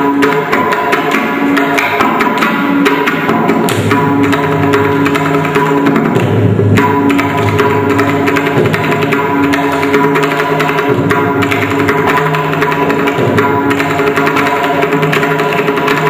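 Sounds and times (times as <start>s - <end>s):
hand drum strokes: 0.0s - 16.0s.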